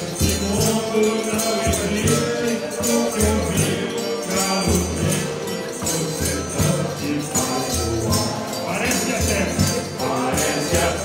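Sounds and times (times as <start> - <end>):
jingling percussion: 0.0 - 11.0.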